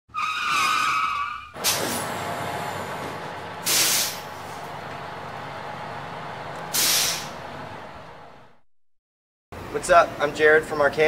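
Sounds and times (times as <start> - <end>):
tyre squeal: 0.1 - 1.9
air brakes hissing: 1.6 - 4.8, 6.6 - 7.6.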